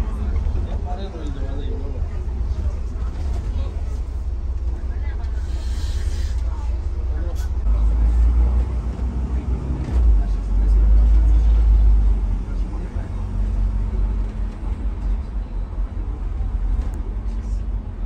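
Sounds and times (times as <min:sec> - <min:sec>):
bus engine and road rumble: 0:00.0 - 0:18.0.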